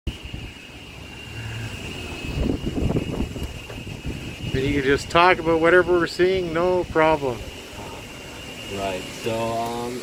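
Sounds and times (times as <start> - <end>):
steady high whine: 0.1 - 10.0.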